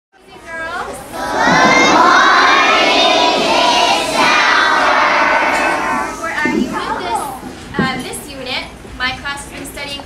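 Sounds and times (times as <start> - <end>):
children shouting and cheering: 1.0 - 7.5.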